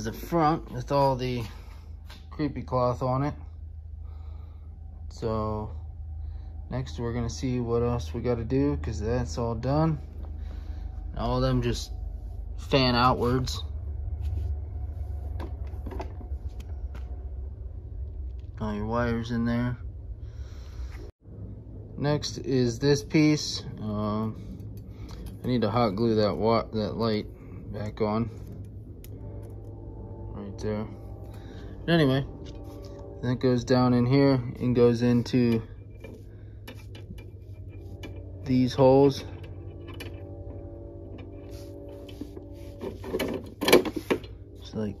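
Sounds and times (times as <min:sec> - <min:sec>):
steady low hum: 0:00.0 - 0:45.0
steady low rumble: 0:00.0 - 0:45.0.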